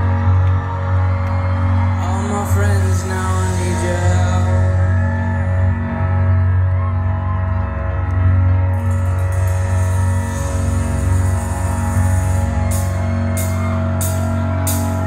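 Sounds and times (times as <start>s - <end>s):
synth bass: 0.0s - 15.0s.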